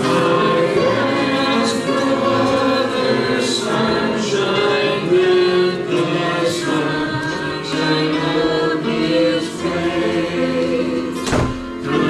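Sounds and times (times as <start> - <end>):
congregation singing a hymn: 0.0 - 12.0.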